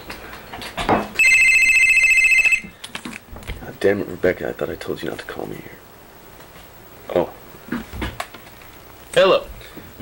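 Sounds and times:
telephone ringing: 1.2 - 2.8.

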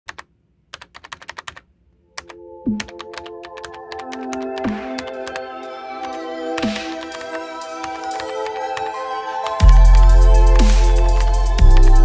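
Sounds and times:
keyboard typing clicks: 0.1 - 1.6, 2.2 - 5.4, 6.6 - 12.0
synth music: 2.1 - 12.0.

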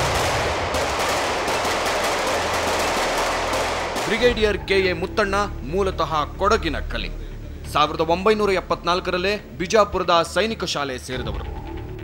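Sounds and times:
rapid automatic gunfire: 0.0 - 4.4.

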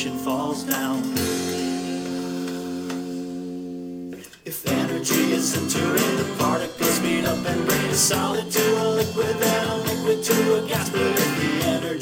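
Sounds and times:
acoustic guitar chord ringing: 1.0 - 11.7.

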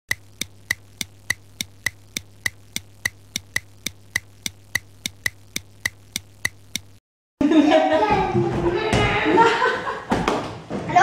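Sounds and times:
film projector clicking: 0.1 - 7.0.

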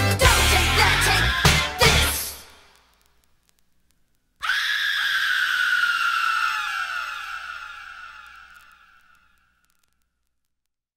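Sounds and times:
vinyl surface crackle: 2.1 - 4.3, 8.3 - 10.7.

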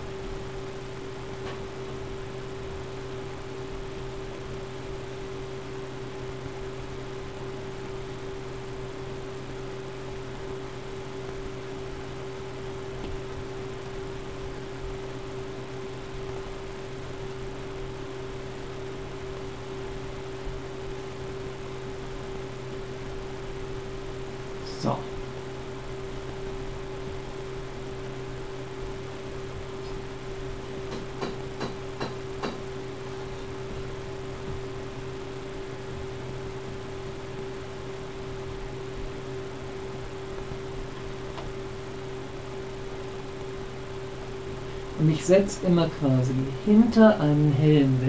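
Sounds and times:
constant mid-pitched tone: 0.0 - 48.0
steady electrical hum: 0.0 - 48.0.

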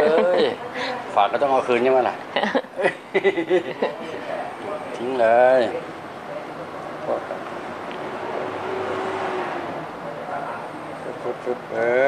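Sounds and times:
motor vehicle passing: 6.6 - 11.8.

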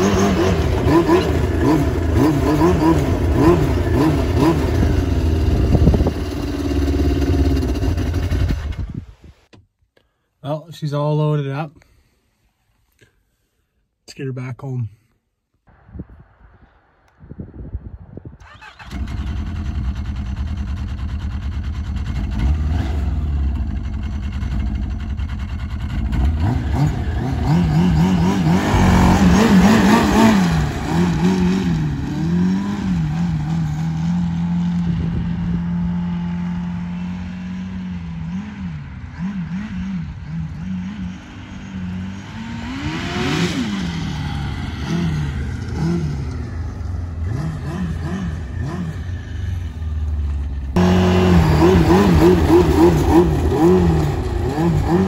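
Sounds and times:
snowmobile engine revving: 0.0 - 9.0, 18.4 - 55.0.

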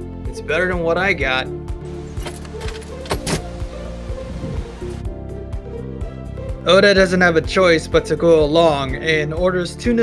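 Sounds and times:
background music with steady beat: 0.0 - 10.0
doorknob and latch clicking: 2.0 - 3.6.

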